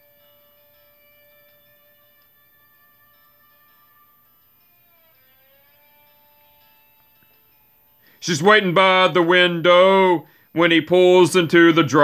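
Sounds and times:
faint instrumental music: 0:00.0 - 0:12.0.

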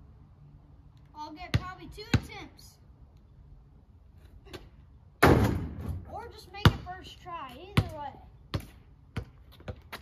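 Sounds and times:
basketball hitting hoop: 0:05.2 - 0:06.0.

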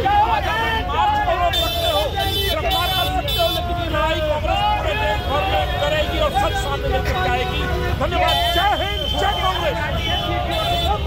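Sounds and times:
men shouting slogans: 0:00.0 - 0:11.0.

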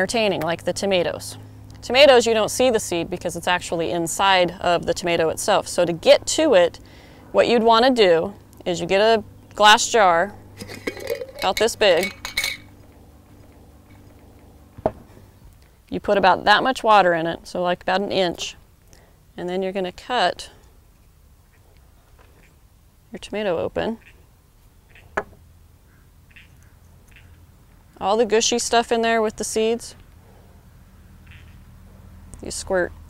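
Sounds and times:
glass jar clinking: 0:10.6 - 0:12.7.

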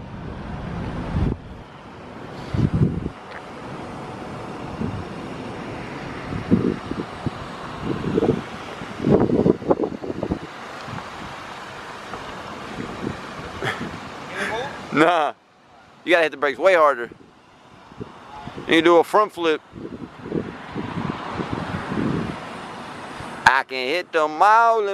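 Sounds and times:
wind on microphone: 0:00.0 - 0:14.3, 0:17.0 - 0:19.0, 0:19.6 - 0:23.4
car driving slowly: 0:00.0 - 0:24.5
low wind gusts: 0:00.0 - 0:24.9.

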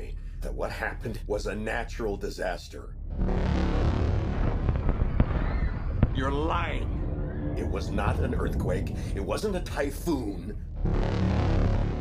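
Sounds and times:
deep rumble: 0:00.0 - 0:12.0.

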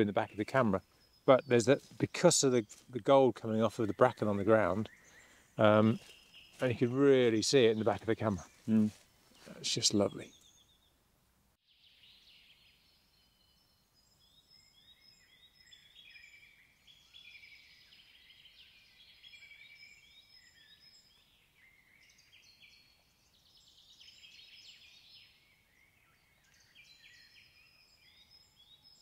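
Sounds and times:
small birds chirping and trilling: 0:00.0 - 0:11.0, 0:11.6 - 0:29.0.

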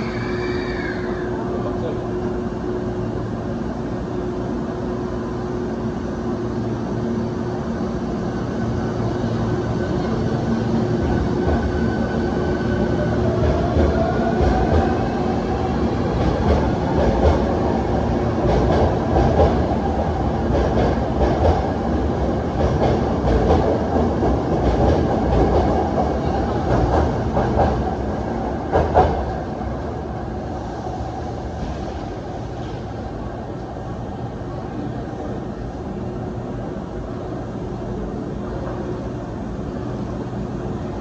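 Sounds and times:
electric train hum: 0:00.0 - 0:41.0.

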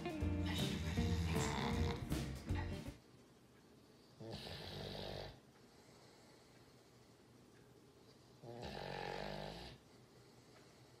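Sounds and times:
dog snoring: 0:00.4 - 0:02.7, 0:04.2 - 0:05.4, 0:08.4 - 0:09.8.

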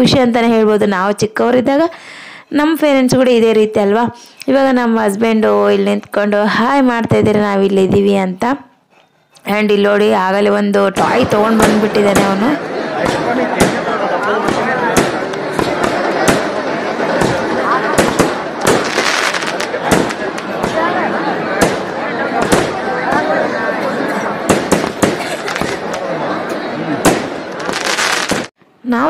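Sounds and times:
crowd voices din: 0:10.3 - 0:28.5
fireworks bangs: 0:10.9 - 0:23.5, 0:24.4 - 0:26.1, 0:27.0 - 0:28.6.

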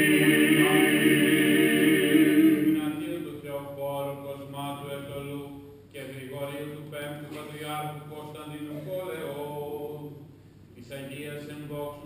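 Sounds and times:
men's voices chanting: 0:00.0 - 0:03.0
solo voice holding long notes: 0:00.0 - 0:03.4.

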